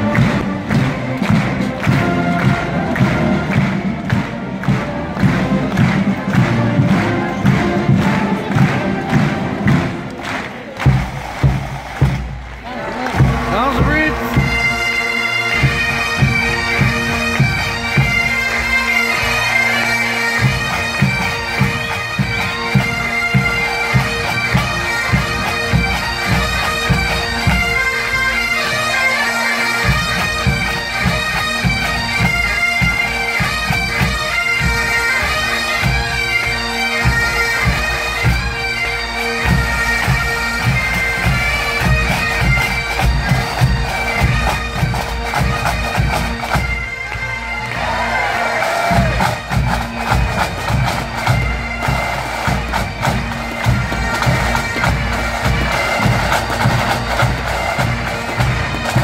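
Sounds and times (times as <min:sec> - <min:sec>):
bagpipes playing: 0:00.0 - 0:59.0
marching drums: 0:00.0 - 0:59.0.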